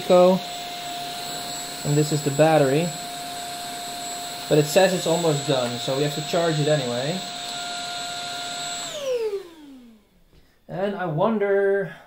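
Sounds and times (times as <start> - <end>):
vacuum cleaner motor whine: 0.0 - 10.2.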